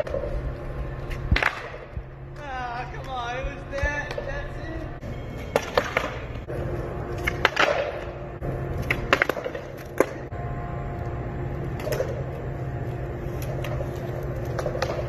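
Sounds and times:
skateboard wheels rolling on concrete: 0:00.0 - 0:15.0
skateboard clacks: 0:01.3 - 0:01.9, 0:05.5 - 0:06.3, 0:07.2 - 0:08.2, 0:08.8 - 0:10.3, 0:13.4 - 0:15.0.

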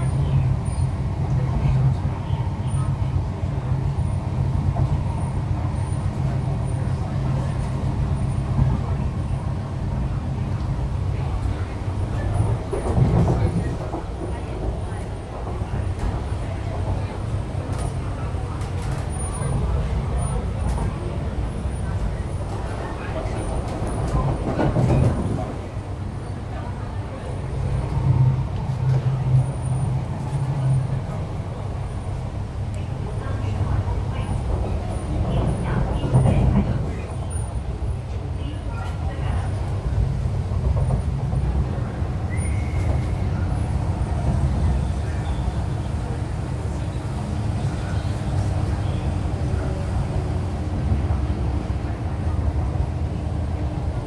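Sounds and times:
electric train rumble and hum: 0:00.0 - 0:54.0.

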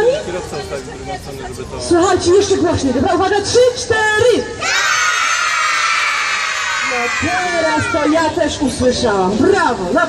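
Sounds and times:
children shouting in unison: 0:04.6 - 0:08.2.

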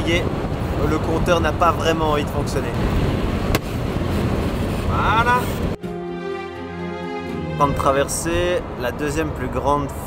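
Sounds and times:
road and wind noise in car: 0:00.0 - 0:05.8, 0:07.6 - 0:10.0.

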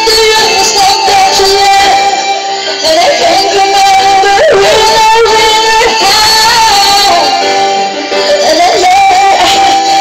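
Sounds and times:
music: 0:00.0 - 0:10.0
woman singing high note: 0:04.2 - 0:06.7.

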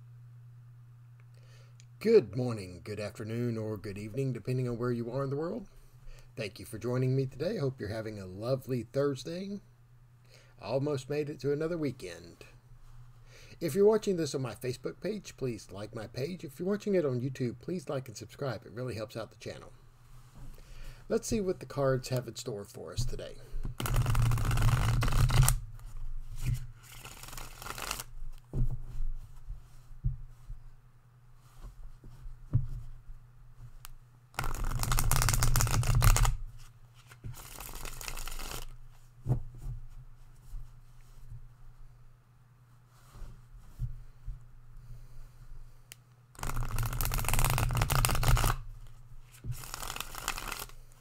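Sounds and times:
cards riffle-shuffled: 0:23.7 - 0:28.4, 0:34.4 - 0:38.8, 0:46.4 - 0:50.9
cards rustling and flicking: 0:23.7 - 0:28.4, 0:34.4 - 0:38.8, 0:46.4 - 0:50.9.

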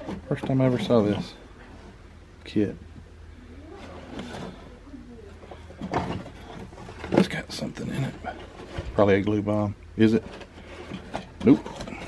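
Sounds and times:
steady low hum: 0:00.0 - 0:12.0
faint background voices: 0:03.3 - 0:09.0.

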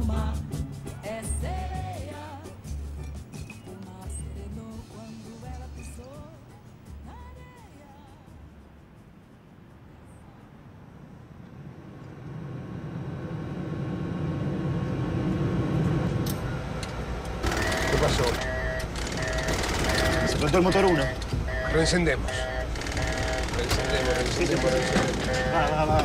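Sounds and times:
low engine rumble: 0:00.0 - 0:26.0
two-tone cockpit warning alarm: 0:17.4 - 0:26.0
voices: 0:17.4 - 0:26.0.

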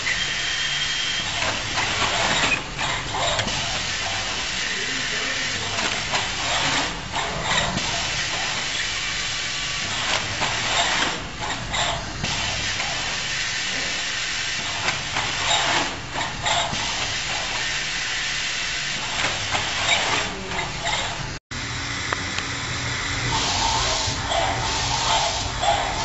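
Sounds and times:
steady machine hiss: 0:03.3 - 0:20.9, 0:21.6 - 0:26.0
suction gripper air hiss: 0:23.3 - 0:26.0.

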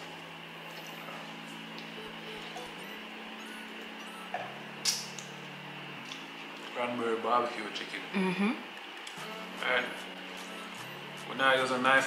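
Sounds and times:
background music of low notes: 0:00.0 - 0:12.0.

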